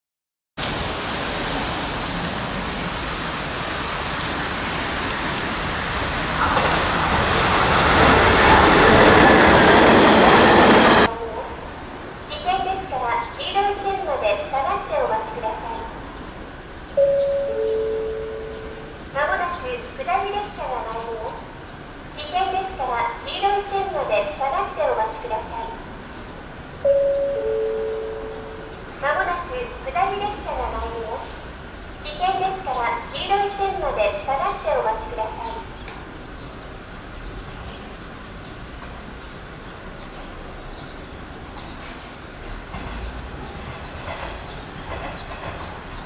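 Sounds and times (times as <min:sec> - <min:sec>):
train running: 0:01.1 - 0:46.0
station public address announcement: 0:05.7 - 0:36.4
two-note falling chime: 0:17.0 - 0:18.8, 0:26.9 - 0:28.7.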